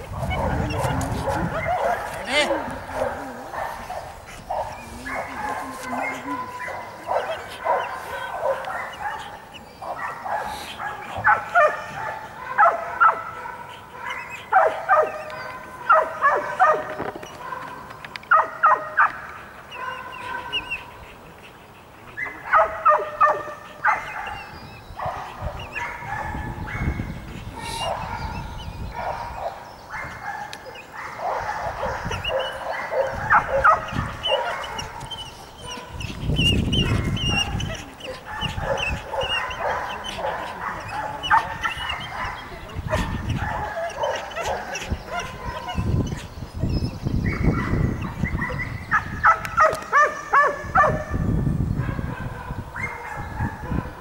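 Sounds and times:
dog barking: 0.1s - 20.9s, 22.2s - 36.1s, 36.8s - 46.1s, 47.3s - 51.2s, 51.8s - 54.0s.

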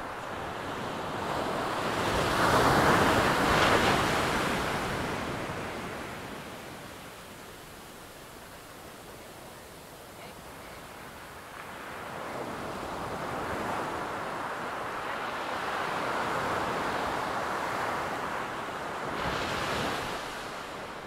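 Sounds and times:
ocean waves rushing: 0.0s - 21.0s.

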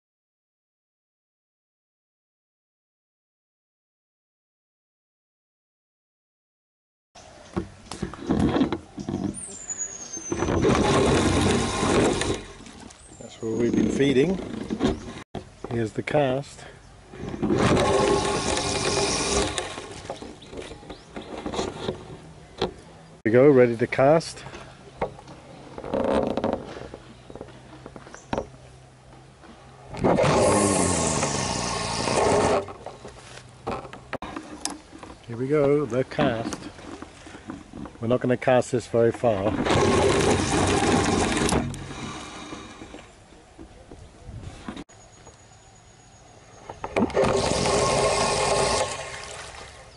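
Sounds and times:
fishing line running off reel: 10.4s - 12.6s, 17.5s - 20.2s, 30.0s - 32.8s, 39.6s - 43.0s, 47.1s - 49.4s.

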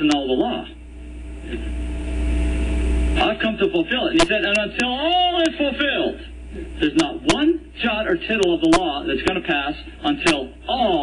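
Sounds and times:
steady low rumble with hum: 0.0s - 11.0s.

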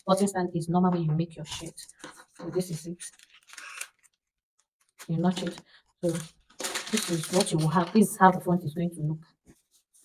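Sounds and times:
scissors cutting paper: 2.6s - 4.2s, 4.9s - 7.9s.

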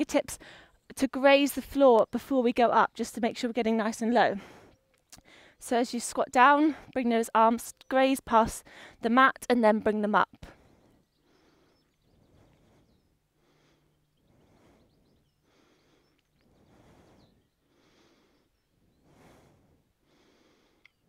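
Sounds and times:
person breathing while exercising: 0.4s - 0.8s, 4.4s - 5.6s, 8.6s - 9.0s, 10.5s - 21.0s.

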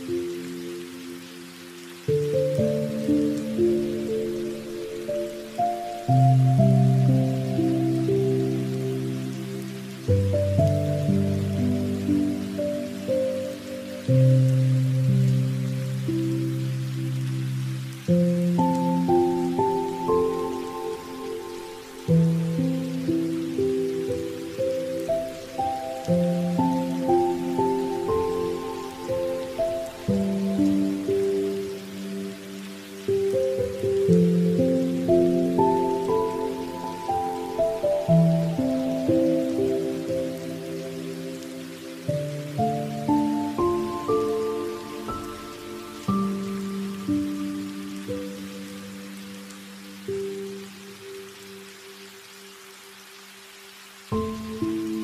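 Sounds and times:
gentle keyboard music: 0.0s - 52.1s, 53.7s - 55.0s
steady rain: 0.0s - 55.0s.

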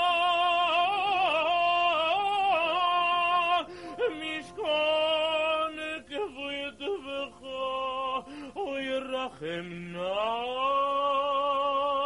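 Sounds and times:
male cantor chanting: 0.0s - 12.0s.

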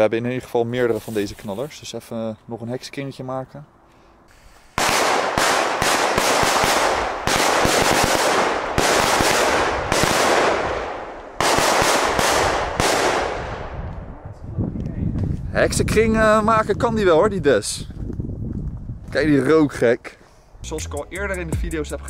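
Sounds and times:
firecrackers crackling: 4.3s - 13.8s.

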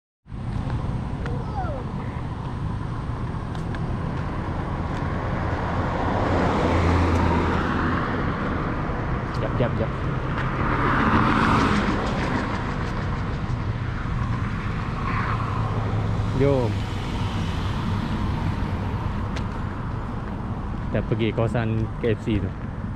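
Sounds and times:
cars on a road: 0.3s - 22.9s
car passing by: 1.6s - 20.6s.

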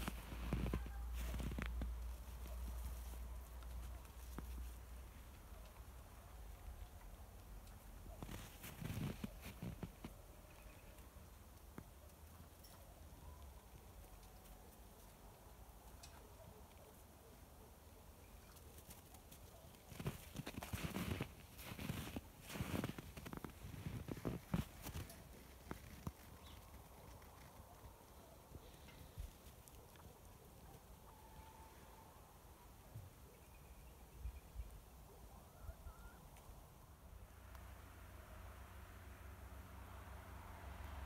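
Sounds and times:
footsteps crunching in snow: 0.0s - 3.2s, 8.2s - 10.1s, 19.9s - 26.6s.

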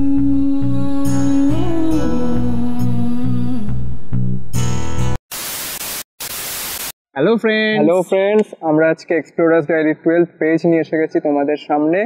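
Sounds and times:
white-noise static bursts: 5.3s - 7.0s.

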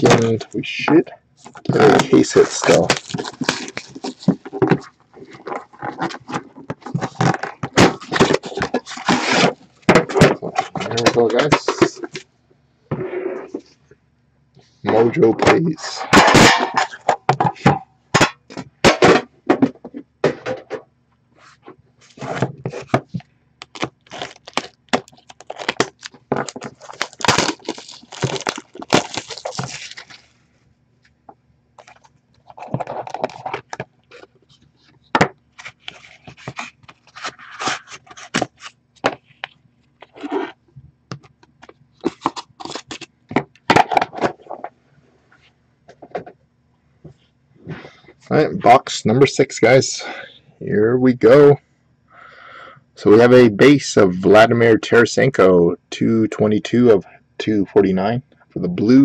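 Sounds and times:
packaging scraping and tearing: 1.5s - 12.1s, 23.6s - 30.4s, 31.8s - 34.6s, 35.5s - 40.6s, 42.0s - 43.1s.

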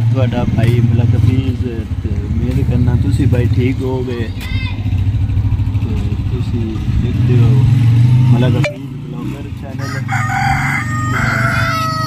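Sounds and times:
rooster crowing: 9.8s - 12.0s.

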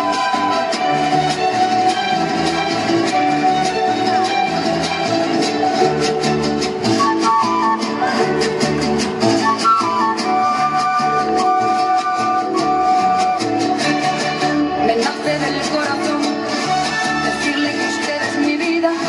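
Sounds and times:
drum kit and hand percussion: 0.0s - 19.0s
live latin dance band: 0.0s - 19.0s
strummed guitar: 0.0s - 19.0s
trumpet: 9.4s - 15.4s, 16.5s - 19.0s.

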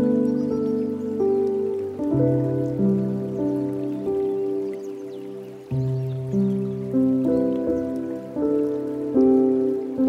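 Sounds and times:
slow soft piano: 0.0s - 10.0s
water trickling from fountain: 0.0s - 10.0s.

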